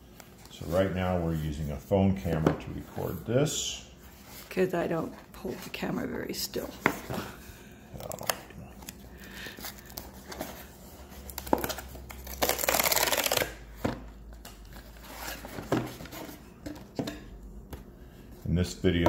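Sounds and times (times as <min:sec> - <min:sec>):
cardboard tear strip ripping: 0:12.1 - 0:13.6.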